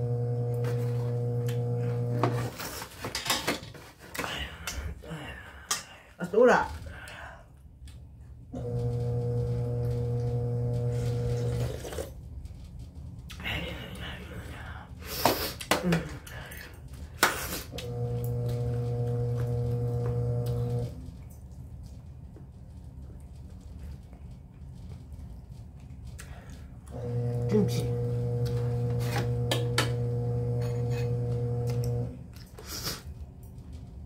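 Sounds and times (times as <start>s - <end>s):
low electrical hum: 0.0s - 34.0s
soft eating noise: 6.7s - 34.0s
steady low hum: 17.7s - 32.4s
person sniffing: 32.6s - 33.1s.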